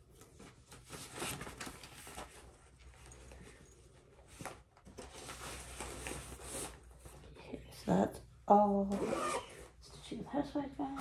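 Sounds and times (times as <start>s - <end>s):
fabric rustling and handling: 0.0s - 7.4s.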